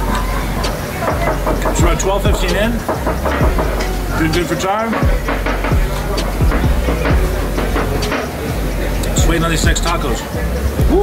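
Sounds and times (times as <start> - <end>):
voices talking: 0.0 - 11.0.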